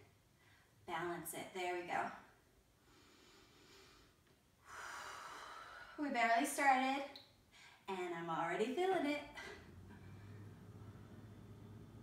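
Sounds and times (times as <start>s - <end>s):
woman breathing: 2.8s - 6.1s, 7.5s - 7.9s.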